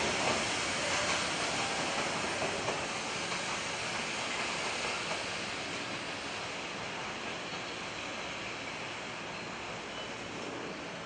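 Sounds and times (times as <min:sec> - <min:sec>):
freight train rolling on rails: 0:00.0 - 0:11.0.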